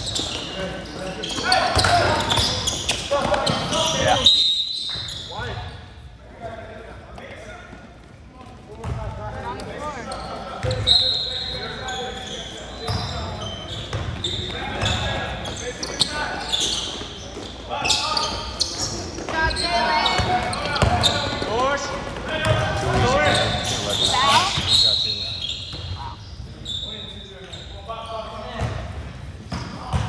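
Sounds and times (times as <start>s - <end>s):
basketball bouncing on court: 8.8s - 9.7s, 13.8s - 15.1s, 19.1s - 21.5s, 22.4s - 23.6s, 29.5s - 30.0s.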